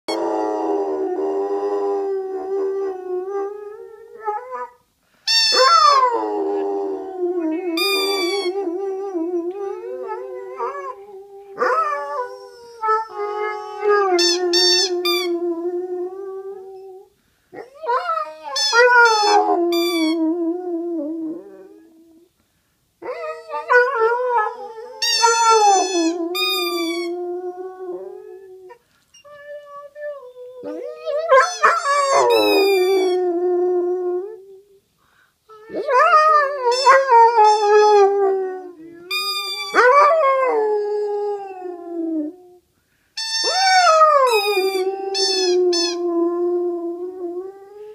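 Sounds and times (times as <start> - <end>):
rubber duck toy squeaks: 5.3 - 5.8, 43.2 - 43.7, 44.3 - 46.0
dog howling: 27.1 - 34.7.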